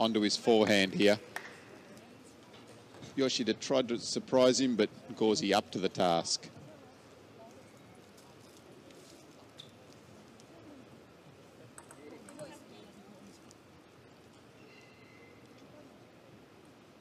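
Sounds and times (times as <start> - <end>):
faint murmur of voices: 0.0 - 3.6, 4.2 - 17.0.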